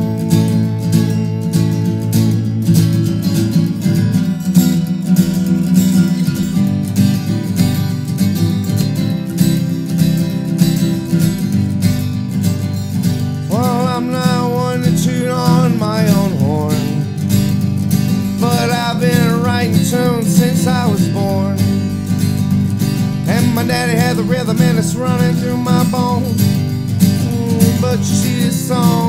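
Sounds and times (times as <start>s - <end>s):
acoustic guitar strumming: 0.0s - 29.0s
person singing: 13.5s - 17.3s, 18.3s - 22.1s, 23.2s - 29.0s.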